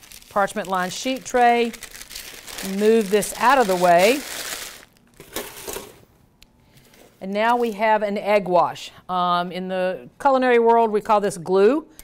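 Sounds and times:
paper crumpling: 0.0 - 5.0.

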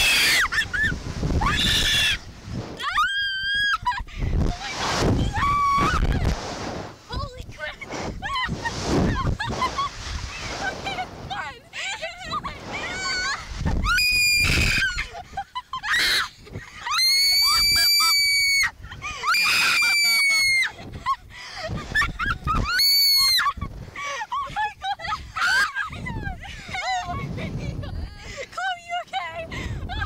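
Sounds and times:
women screaming: 0.0 - 0.6, 1.4 - 2.2, 2.8 - 4.0, 5.3 - 6.1, 12.8 - 21.2, 22.6 - 23.5, 24.8 - 26.0.

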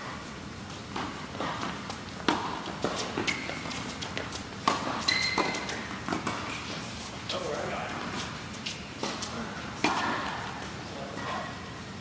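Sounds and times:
shoes squeaking on court: 0.7 - 10.2
tennis balls struck and bouncing: 0.9 - 6.6, 9.0 - 10.5.

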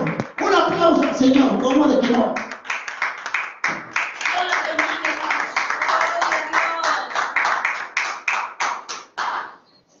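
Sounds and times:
hands clapping: 0.0 - 9.6.

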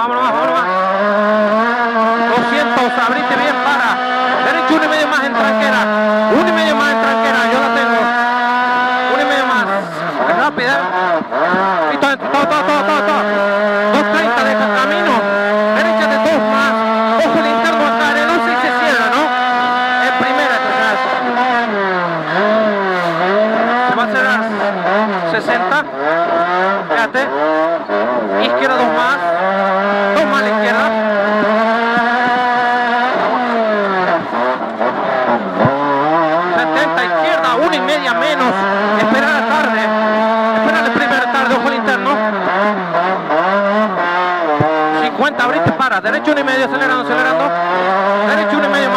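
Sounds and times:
rally car engine revving: 0.0 - 48.9.

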